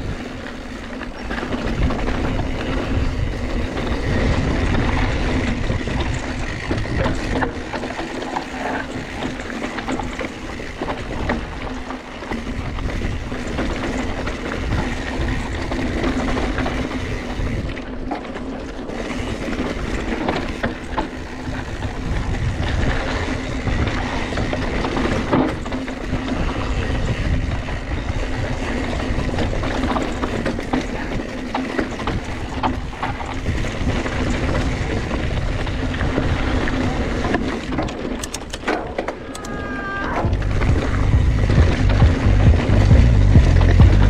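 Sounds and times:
bike rattling and knocking: 0.0 - 44.0
wind rushing over microphone: 1.5 - 7.7, 21.3 - 31.2, 39.6 - 44.0.

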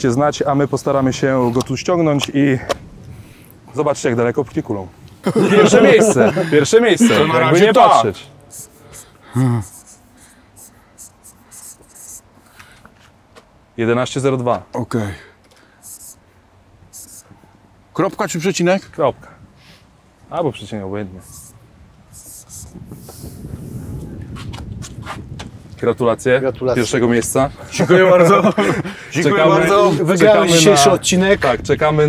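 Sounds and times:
low wind rumble: 0.0 - 9.4, 16.2 - 32.0
marker pen squeaking: 8.5 - 12.3, 21.2 - 21.6.

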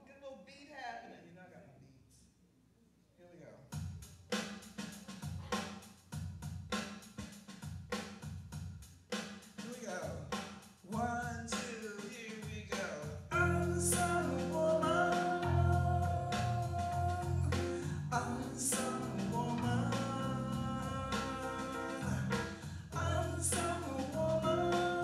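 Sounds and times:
steady drum beat: 3.7 - 25.0
keyboard music: 13.3 - 25.0.

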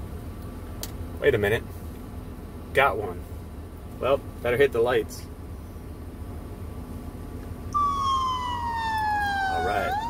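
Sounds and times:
low rumble inside a car: 0.0 - 10.0
police siren wailing: 7.8 - 10.0.

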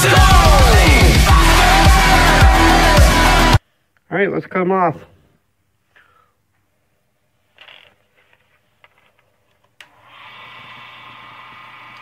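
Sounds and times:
lathe motor humming: 10.0 - 12.0.

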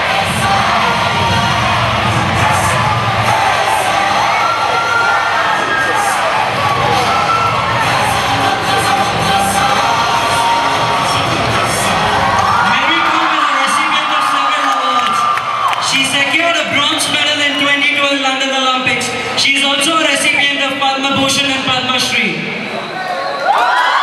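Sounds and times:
music playing: 0.0 - 22.4
crowd cheering and shouting: 0.0 - 24.0.

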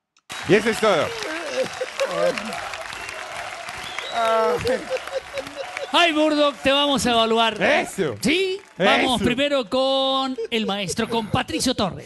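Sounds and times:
audience applauding: 0.3 - 10.2.

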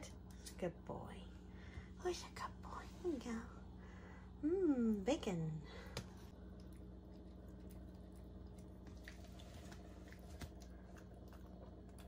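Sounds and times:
low hum: 0.0 - 12.0
dog chewing and smacking: 6.5 - 12.0.

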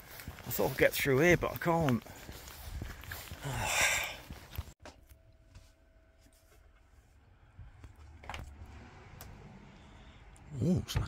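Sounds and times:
outdoor wind noise: 1.4 - 11.0.

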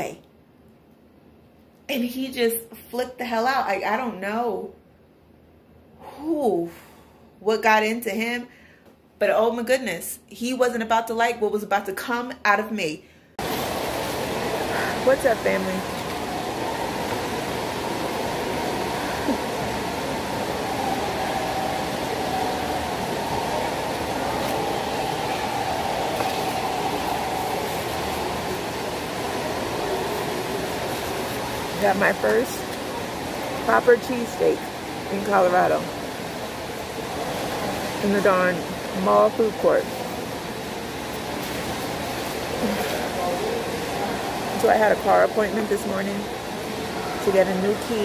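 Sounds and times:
faint steady hum: 0.0 - 48.0
food court background noise: 13.4 - 48.0.

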